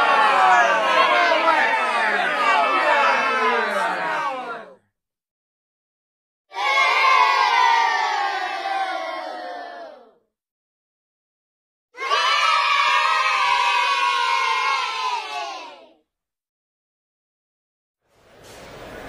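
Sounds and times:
children booing: 0:00.0 - 0:04.7, 0:06.5 - 0:10.1, 0:12.0 - 0:16.0
children cheering: 0:00.0 - 0:04.8, 0:06.5 - 0:10.1, 0:12.0 - 0:15.9.

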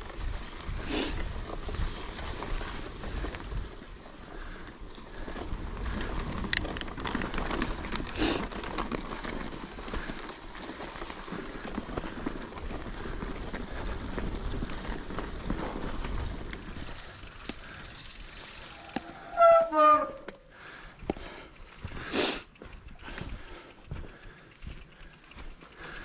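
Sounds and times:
bike tyres rumbling on trail: 0:00.0 - 0:26.0
disc brakes squealing: 0:18.7 - 0:20.3.

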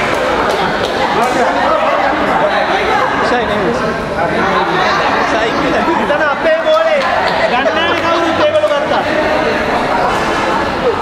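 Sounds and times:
people chattering in a hall: 0:00.0 - 0:11.0.

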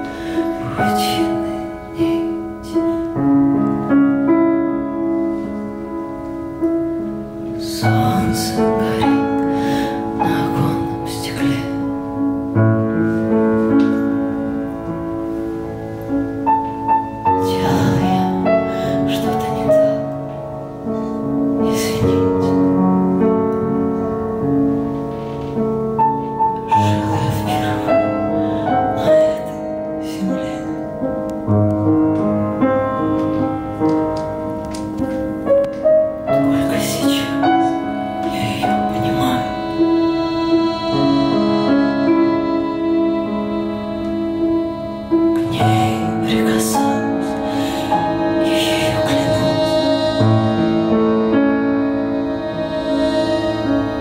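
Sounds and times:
piano sustained chords: 0:00.0 - 0:54.0.

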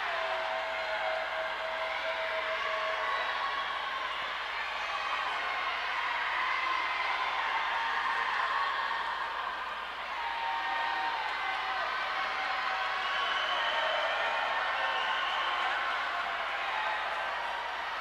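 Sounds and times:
crowd cheering and shouting: 0:00.0 - 0:18.0.

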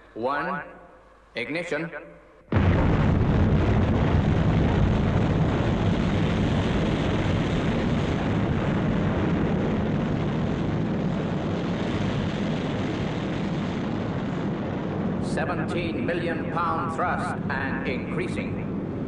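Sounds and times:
rocket engines roaring: 0:02.6 - 0:19.0.

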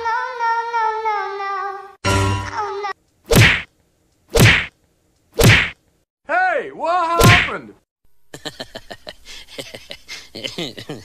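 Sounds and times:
loud whacks: 0:03.3 - 0:03.7, 0:04.3 - 0:05.8, 0:07.2 - 0:07.6.

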